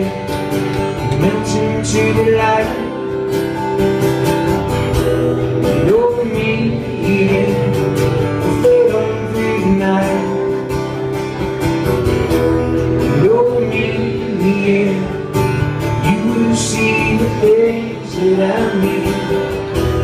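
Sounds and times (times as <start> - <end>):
man singing: 0.0 - 4.2, 5.4 - 11.1, 12.6 - 20.0
acoustic guitars strummed: 0.0 - 20.0.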